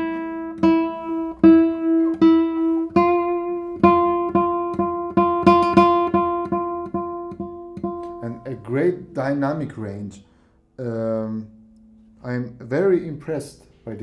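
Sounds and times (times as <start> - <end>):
classical guitar plucked note: 0.0 - 9.1
man talking: 8.2 - 11.6, 12.2 - 14.0.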